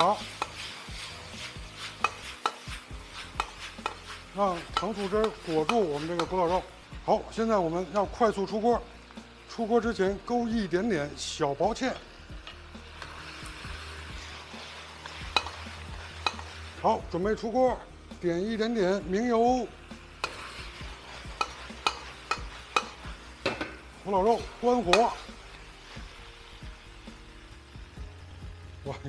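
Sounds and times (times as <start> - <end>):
metal ladle scraping iron wok: 0.0 - 6.8, 11.8 - 16.8, 20.2 - 26.1
light sizzle: 0.0 - 29.0
metal ladle clicking on wok: 2.0 - 2.6, 15.3 - 15.6, 16.2 - 16.5, 21.4 - 23.8.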